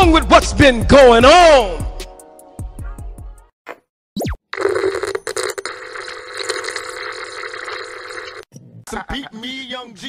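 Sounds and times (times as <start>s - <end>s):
buzzing crackling static: 4.5s - 8.5s.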